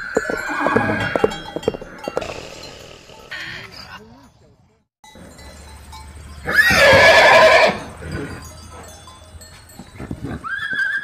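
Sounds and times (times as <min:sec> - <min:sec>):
horse whinnying: 0:00.1 - 0:01.3, 0:06.5 - 0:08.2, 0:10.3 - 0:11.0.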